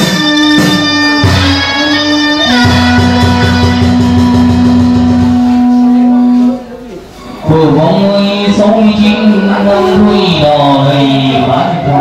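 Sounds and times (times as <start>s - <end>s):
wind instrument long note: 0.0s - 12.0s
low pulsing accompaniment: 0.1s - 12.0s.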